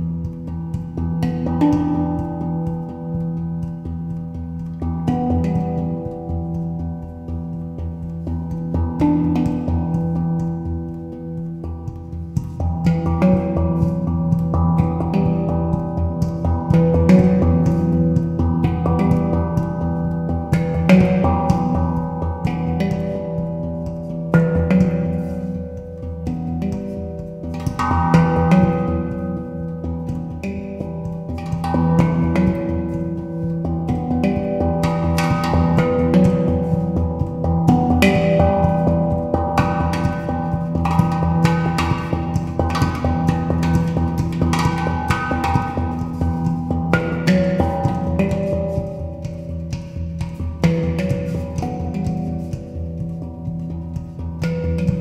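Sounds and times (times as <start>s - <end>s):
handpan notes ringing: 0.0s - 55.0s.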